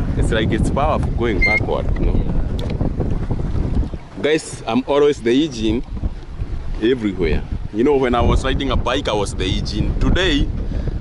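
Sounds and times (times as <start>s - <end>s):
choppy water lapping boat: 0.0s - 11.0s
wind buffeting microphone: 0.0s - 11.0s.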